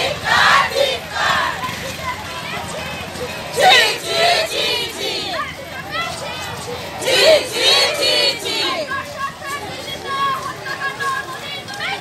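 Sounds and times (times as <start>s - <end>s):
women shouting a slogan: 0.0s - 12.0s.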